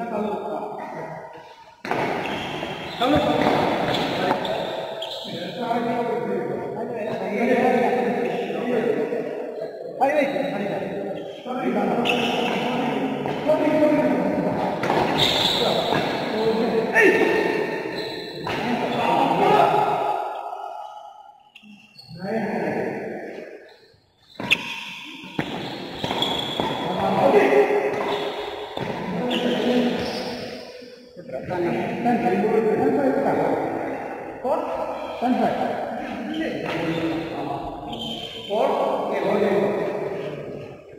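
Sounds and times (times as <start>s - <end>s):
indistinct voices: 21.5s - 40.9s.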